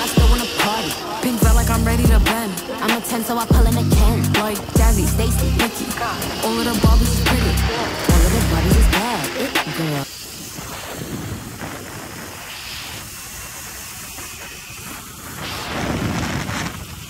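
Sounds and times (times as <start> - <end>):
rap music with vocals: 0.0 - 10.1
wind rushing over microphone: 10.0 - 17.0.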